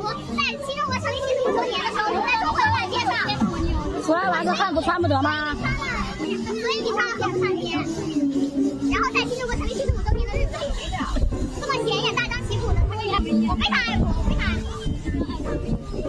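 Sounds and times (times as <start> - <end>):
music playing: 0.0 - 16.0
young people talking: 0.0 - 16.0.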